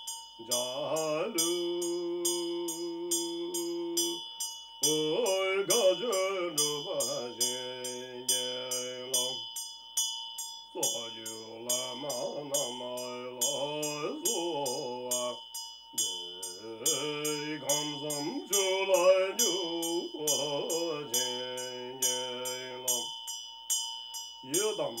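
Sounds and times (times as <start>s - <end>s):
hand bell ringing: 0.0s - 25.0s
man chanting: 0.4s - 4.2s, 4.8s - 9.4s, 10.8s - 15.4s, 16.0s - 23.1s, 24.4s - 25.0s.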